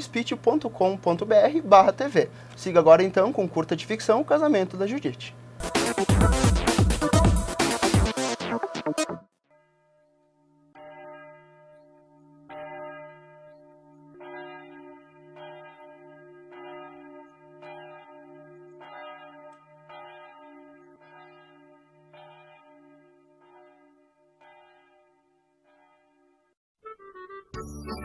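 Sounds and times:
church bell tolling: 9.5 - 26.4.

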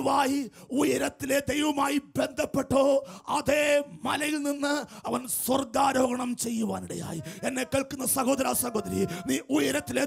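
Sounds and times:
man preaching through loudspeakers: 0.0 - 10.0.

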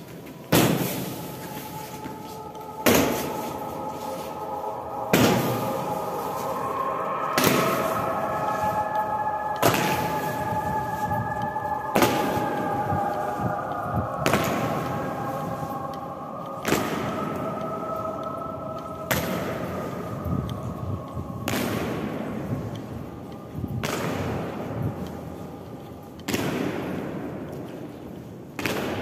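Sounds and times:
faint tune: 0.0 - 26.2.

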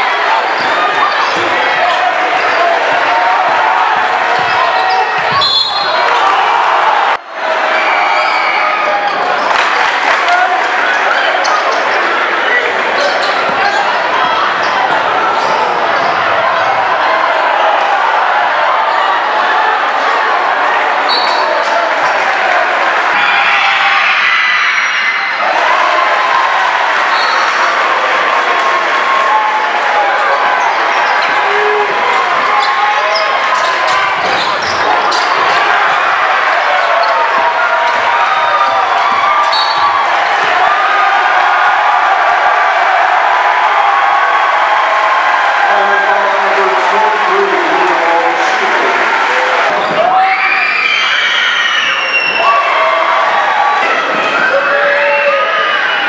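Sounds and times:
crowd voices and shouts: 0.0 - 56.0.

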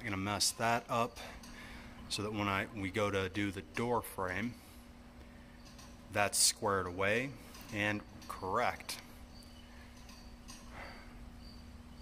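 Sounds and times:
steady low hum: 0.0 - 12.0
insect chirping: 9.0 - 12.0.

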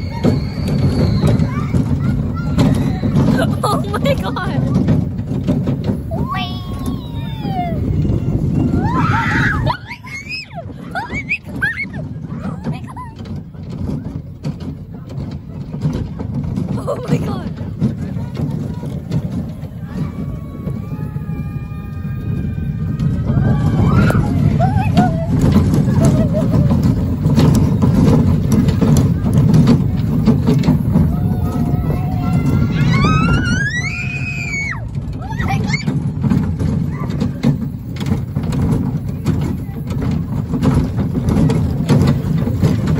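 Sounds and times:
roller coaster rumbling on track: 0.0 - 42.9
rider screaming: 31.0 - 35.9.

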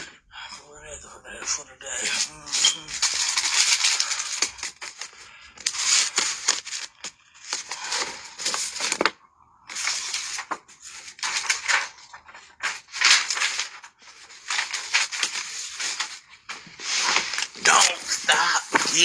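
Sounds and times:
rustling and crinkling: 1.3 - 19.0.

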